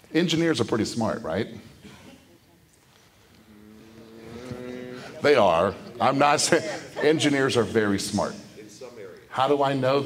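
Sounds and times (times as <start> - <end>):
person humming mmm: 3.3 - 5.2.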